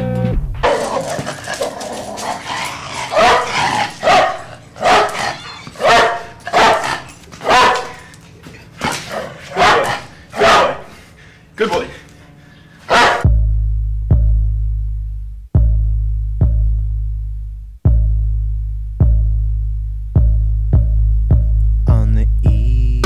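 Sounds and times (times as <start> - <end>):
dog barking: 0.6 - 1.8, 2.4 - 11.1, 12.9 - 13.3
person speaking: 11.6 - 12.1.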